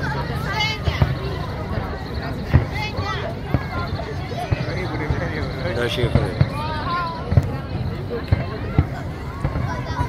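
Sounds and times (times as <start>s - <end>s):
fireworks dull low thuds: 0.0s - 10.0s
people talking: 0.0s - 10.0s.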